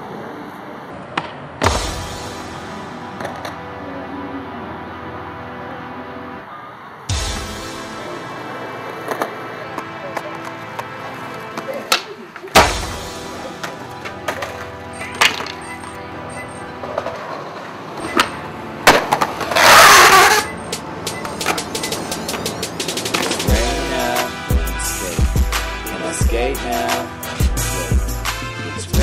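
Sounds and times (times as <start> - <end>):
background music: 1.6 - 29.0
skateboard scraping rush: 8.4 - 20.6, 21.2 - 24.2
skateboard cracking on concrete: 8.9 - 15.6, 16.8 - 20.5.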